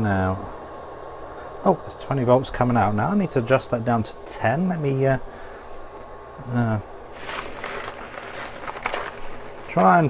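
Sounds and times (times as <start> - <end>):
small items rustling and clattering: 7.1 - 10.0.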